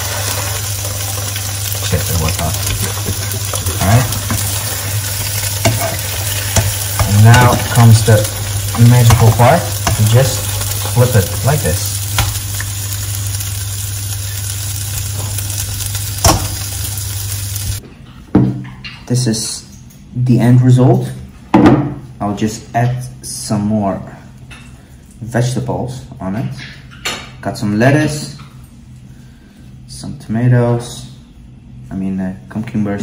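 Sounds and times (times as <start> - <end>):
food sizzling in pans: 0.0 - 17.8.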